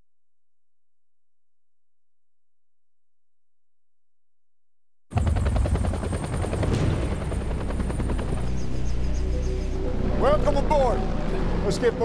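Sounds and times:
helicopter rotor blades chopping: 5.1s - 12.0s
deep engine rumble: 5.2s - 12.0s.

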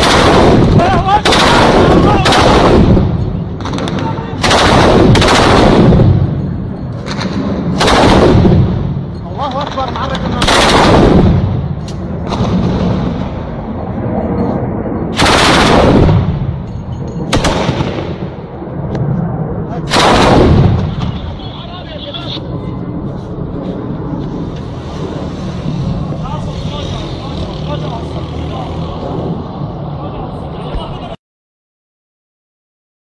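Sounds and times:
voices: 0.8s - 2.4s, 21.0s - 22.8s, 26.1s - 29.3s, 29.9s - 31.2s
automatic gunfire bursts: 4.4s - 5.9s, 10.4s - 11.2s, 15.2s - 16.1s.

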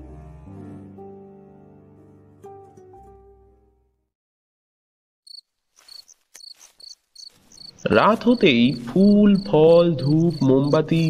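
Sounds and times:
crickets chirping: 5.3s - 11.0s.

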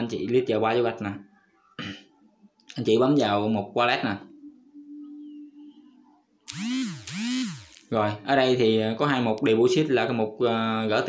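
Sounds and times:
small motor whirring: 6.5s - 7.9s.

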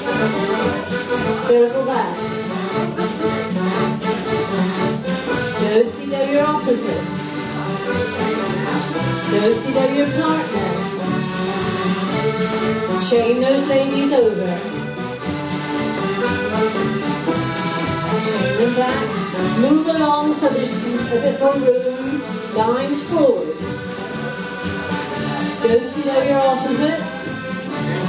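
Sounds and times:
folk dance band playing: 0.0s - 28.0s.

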